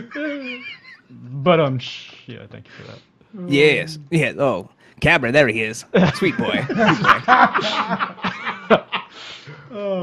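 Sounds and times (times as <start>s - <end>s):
men laughing: 5.9s - 9.1s.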